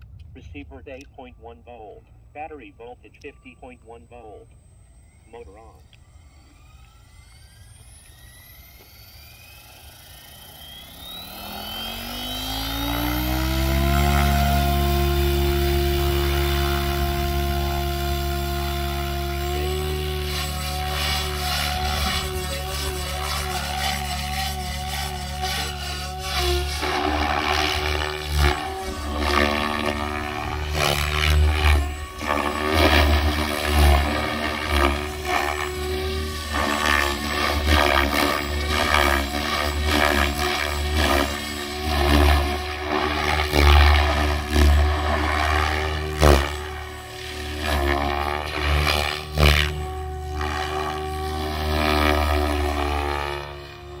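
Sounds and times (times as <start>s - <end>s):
helicopter motor and gear whine: 0.0s - 54.0s
rotor blades whooshing: 6.0s - 54.0s.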